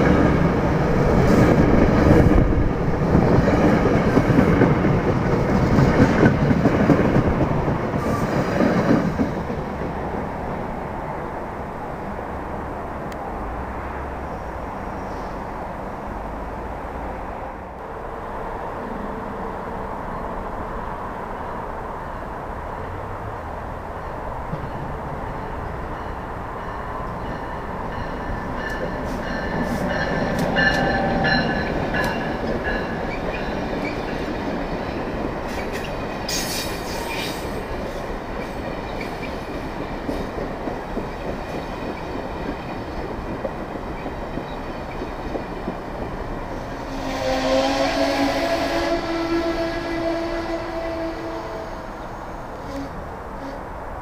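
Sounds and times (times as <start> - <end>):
train rumbling past: 0.0 - 54.0.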